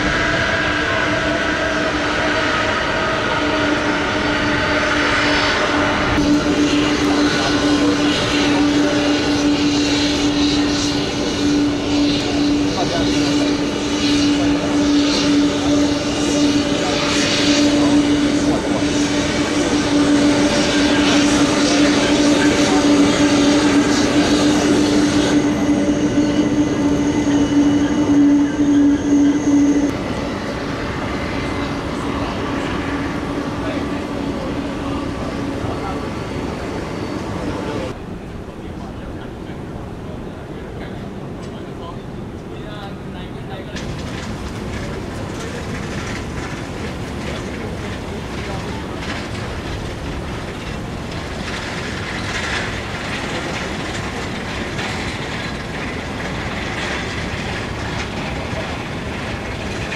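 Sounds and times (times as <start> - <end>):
jet engines idling: 0.0 - 59.9.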